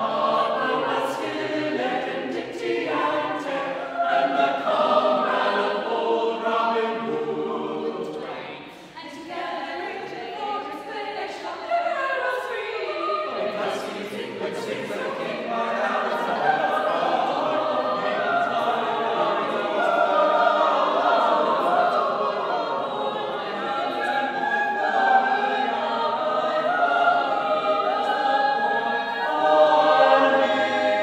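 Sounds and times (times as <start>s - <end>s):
a cappella choir singing: 0.0s - 31.0s.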